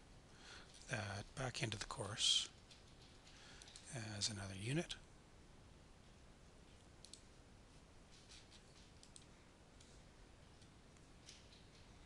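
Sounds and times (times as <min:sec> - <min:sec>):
computer mouse clicks: 0:07.0 - 0:07.3, 0:08.2 - 0:10.0.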